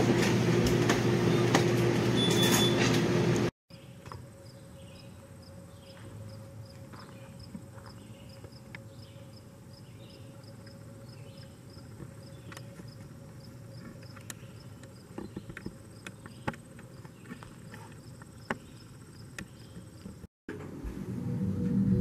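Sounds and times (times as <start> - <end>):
insect chirping: 3.7 - 20.2
continuous high insect trill: 3.7 - 20.3.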